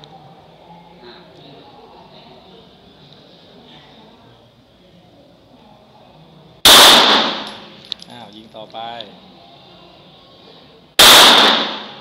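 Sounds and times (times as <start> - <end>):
pistol shot with echo: 6.6 - 7.7, 11.0 - 12.0.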